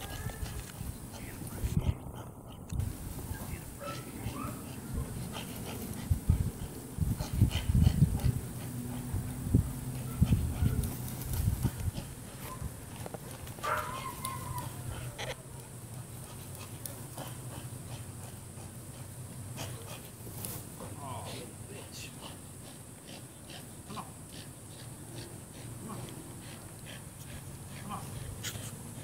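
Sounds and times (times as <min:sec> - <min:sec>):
puppy making dog sounds: 0:03.8 - 0:09.2.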